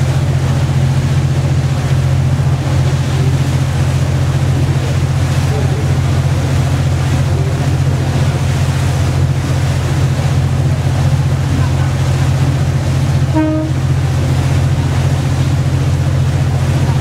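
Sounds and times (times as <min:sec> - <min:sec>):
boat engine humming: 0:00.0 - 0:17.0
wind and water rushing: 0:00.0 - 0:17.0.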